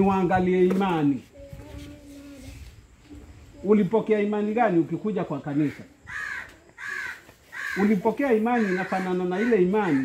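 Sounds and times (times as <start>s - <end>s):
crow cawing: 5.6s - 10.0s.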